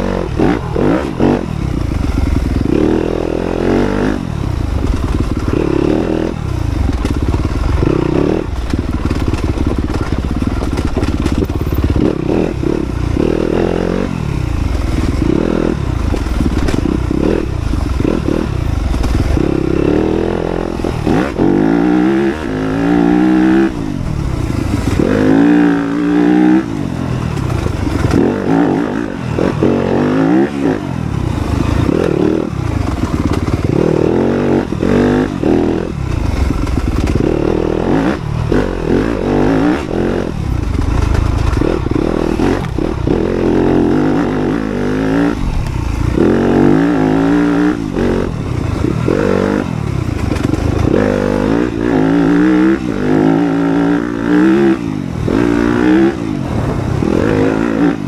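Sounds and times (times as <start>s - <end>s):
dirt bike engine revving: 0.0s - 58.0s.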